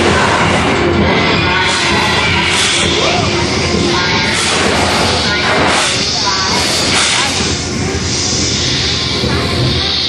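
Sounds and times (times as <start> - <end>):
hissing surges: 0.0 - 10.0
ride soundtrack music and effects: 0.0 - 10.0.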